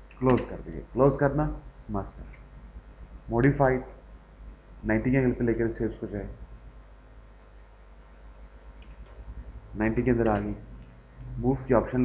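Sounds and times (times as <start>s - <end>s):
low mains hum: 0.0s - 12.0s.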